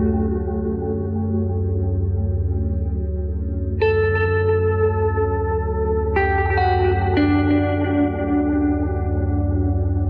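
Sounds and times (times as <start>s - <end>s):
low drone: 0.0s - 10.0s.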